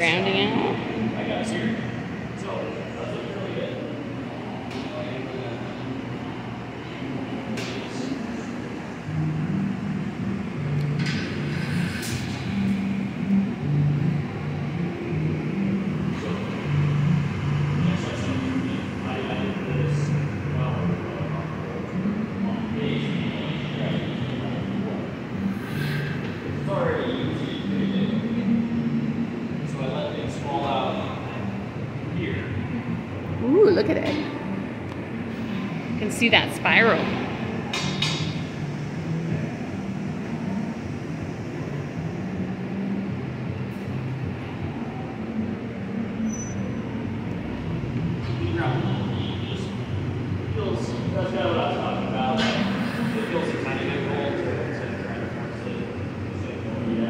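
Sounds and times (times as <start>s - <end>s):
gas furnace roaring: 0.0s - 57.0s
people's voices: 33.0s - 35.0s.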